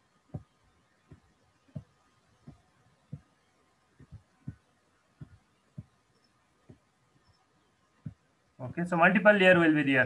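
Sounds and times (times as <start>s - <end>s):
faint soft low thumps: 0.2s - 7.4s, 8.0s - 8.8s.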